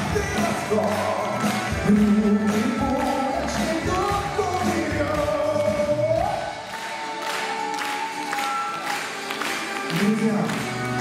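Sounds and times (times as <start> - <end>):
live pop band music: 0.0 - 11.0.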